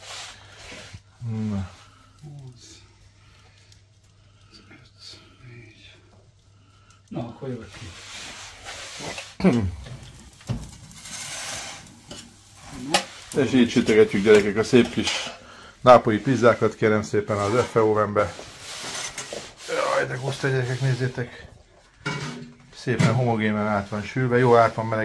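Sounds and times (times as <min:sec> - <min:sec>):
metal peel scraping oven floor: 0:07.7 - 0:21.4, 0:22.0 - 0:25.0.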